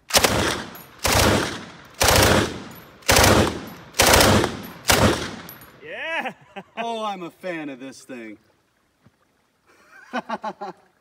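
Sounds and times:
rifle shots echoing: 0.0 - 5.8.

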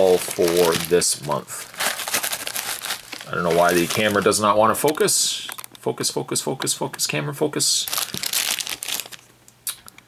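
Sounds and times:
candy wrappers crinkling: 0.0 - 5.8, 7.8 - 10.0.

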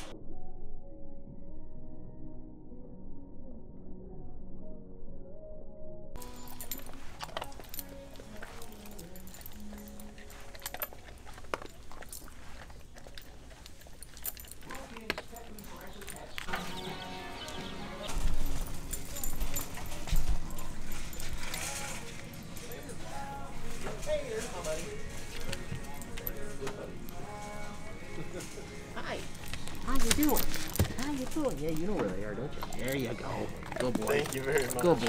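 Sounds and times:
background music: 0.0 - 35.0
dog claws clicking on concrete: 6.2 - 16.5
background voices: 6.2 - 35.0.

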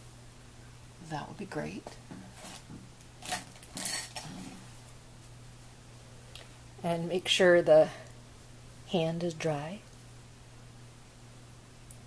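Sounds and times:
low steady hum: 0.0 - 12.0
small hard objects clinking: 3.2 - 4.3.

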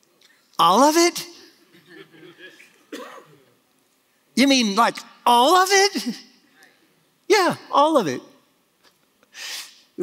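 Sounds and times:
man clearing his throat: 2.9 - 3.5.

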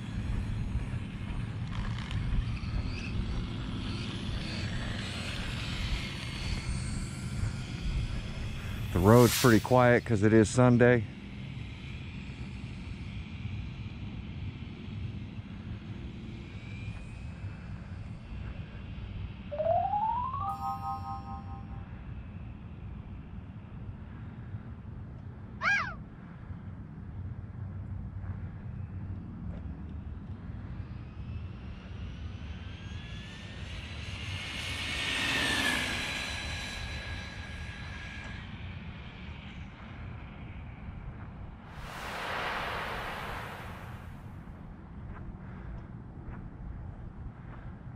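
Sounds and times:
steady low rumble: 41.6 - 45.9.

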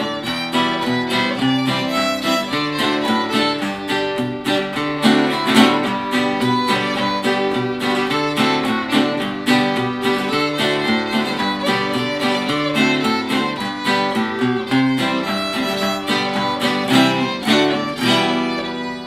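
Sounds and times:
acoustic guitar strumming chords: 0.0 - 19.0
fiddle playing a melody: 0.0 - 19.0.

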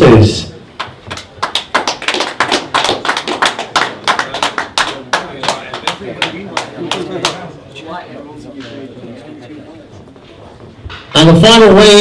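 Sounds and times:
crowd applauding: 0.8 - 7.6.

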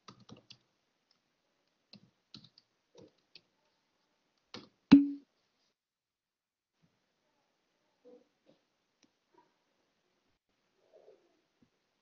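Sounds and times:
keyboard and mouse clicks: 0.0 - 3.5.

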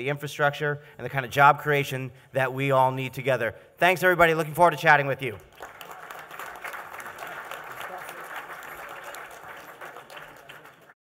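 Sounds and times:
audience applauding: 5.4 - 11.0.

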